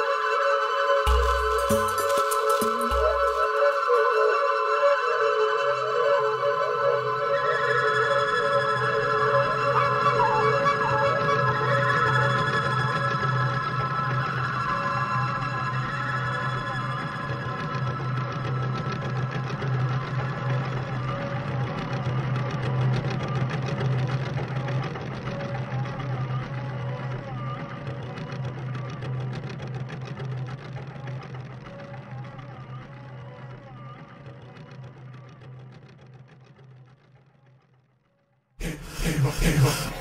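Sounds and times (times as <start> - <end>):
keyboard instrument rapid notes: 1.1 - 3.8
steady low hum: 38.6 - 40.0.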